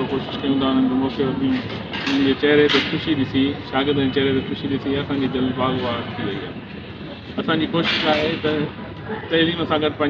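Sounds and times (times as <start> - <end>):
man speaking into microphone: 0.0 - 6.6, 7.4 - 10.0
background din: 0.0 - 9.0.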